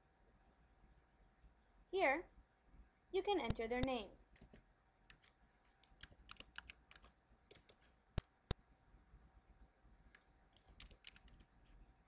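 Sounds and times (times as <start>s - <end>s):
faint typing on a keyboard: 0.0s - 12.0s.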